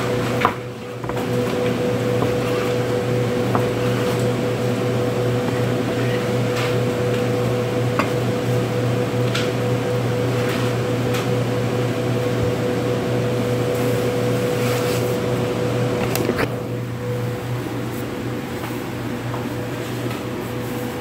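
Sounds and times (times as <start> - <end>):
steady machine hum: 0.0 - 21.0.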